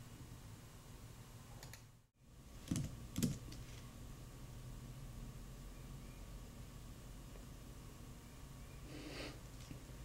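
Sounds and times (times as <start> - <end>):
computer keyboard keystrokes: 2.6 - 3.6.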